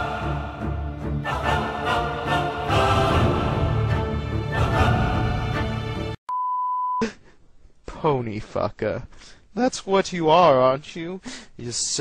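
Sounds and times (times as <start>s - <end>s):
music: 0.0s - 6.2s.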